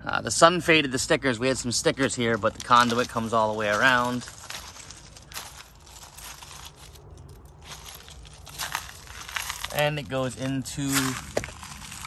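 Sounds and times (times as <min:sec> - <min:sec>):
footsteps on gravel: 0:01.5 - 0:12.0.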